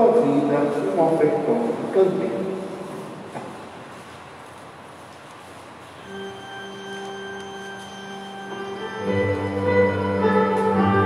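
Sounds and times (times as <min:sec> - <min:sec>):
held instrument note: 0:06.0 - 0:11.0.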